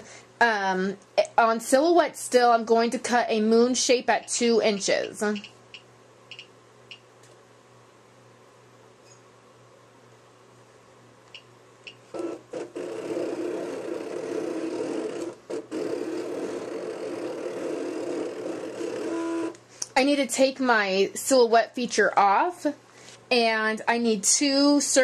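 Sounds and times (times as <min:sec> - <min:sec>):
cutting machine motors whirring: 0:12.1 - 0:19.6.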